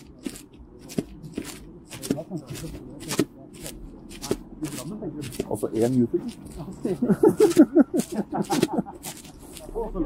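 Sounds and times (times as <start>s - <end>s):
footsteps in snow: 0.0s - 10.0s.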